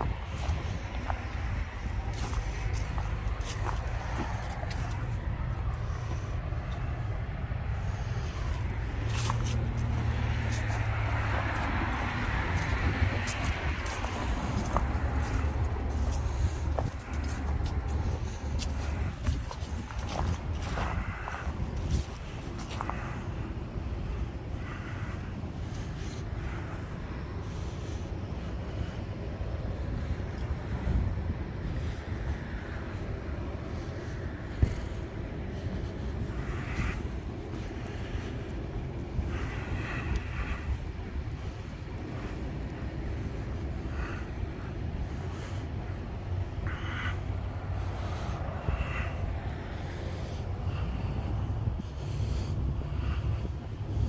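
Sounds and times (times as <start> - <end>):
footsteps clicking and scuffing: 0.0 - 23.8, 30.1 - 44.6
traffic rumble: 0.0 - 54.0
wind buffeting microphone: 0.0 - 54.0.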